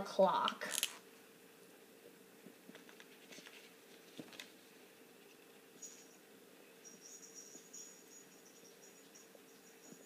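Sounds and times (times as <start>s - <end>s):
faint low hum: 0.0s - 10.0s
high-pitched chirping trill: 6.8s - 10.0s.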